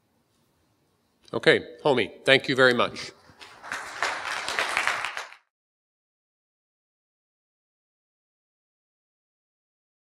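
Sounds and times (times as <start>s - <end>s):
audience applauding: 3.4s - 5.5s.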